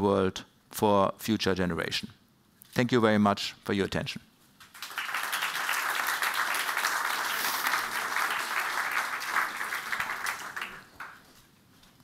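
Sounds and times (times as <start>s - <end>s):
audience applauding: 4.6s - 11.4s.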